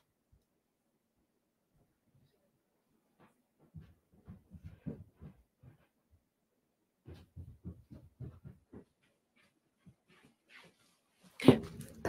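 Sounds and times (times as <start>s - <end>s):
rustling and shuffling: 3.0s - 6.4s, 7.0s - 12.0s.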